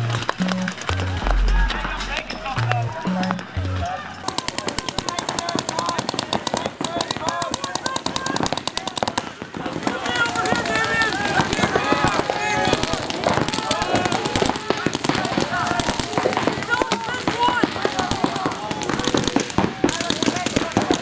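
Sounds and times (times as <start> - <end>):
music with deep bass: 0.0 - 4.1
players shouting: 0.0 - 21.0
paintball markers firing rapidly: 4.2 - 21.0.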